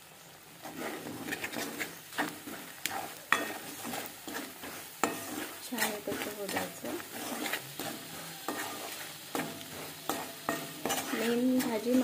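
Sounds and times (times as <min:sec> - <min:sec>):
light frying sizzle: 0:00.0 - 0:12.0
spoon scraping metal pan: 0:00.6 - 0:12.0.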